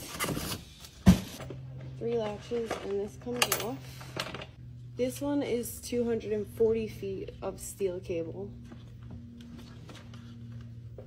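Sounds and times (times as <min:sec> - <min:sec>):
steady low hum: 0:00.2 - 0:11.0.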